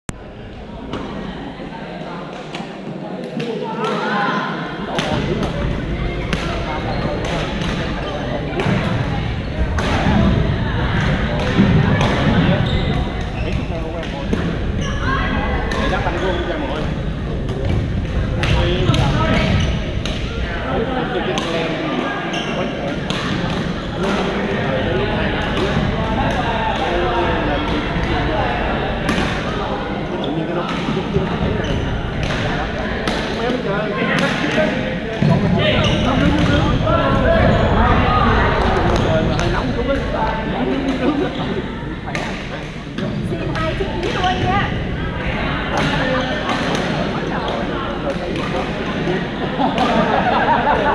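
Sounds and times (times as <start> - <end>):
chatter of players: 0.1 - 50.9
rackets hitting shuttlecocks: 5.0 - 8.0
rackets hitting shuttlecock: 5.0 - 9.1, 11.0 - 12.4, 22.8 - 24.3, 29.0 - 29.5, 30.7 - 33.6, 35.8 - 36.6, 42.0 - 44.3, 45.7 - 49.1.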